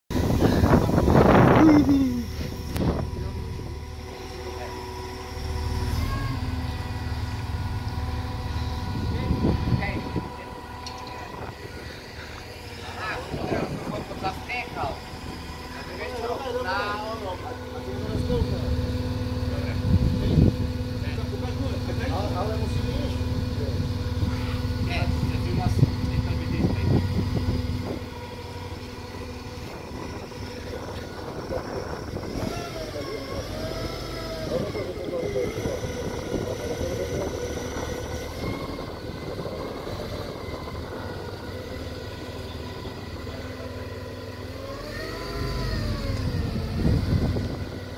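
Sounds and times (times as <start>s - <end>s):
forklift engine running: 0.1s - 47.9s.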